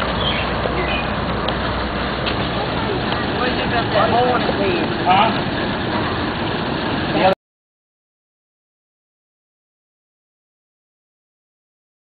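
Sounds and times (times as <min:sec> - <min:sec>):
people talking: 0:02.2 - 0:07.4.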